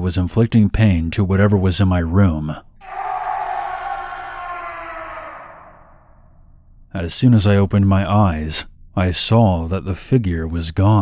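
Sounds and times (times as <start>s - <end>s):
creature shriek: 2.8s - 6.2s.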